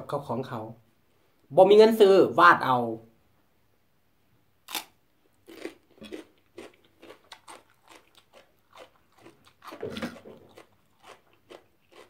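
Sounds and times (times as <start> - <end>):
person chewing: 4.7 - 12.0.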